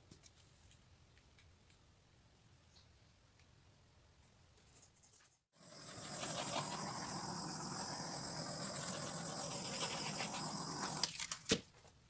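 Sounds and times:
butane torch hissing: 5.6 - 11.1.

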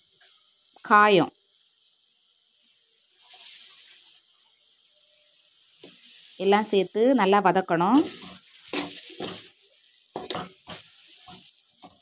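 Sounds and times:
pan sizzling faintly: 0.0 - 12.0
soft hiss: 0.0 - 12.0.

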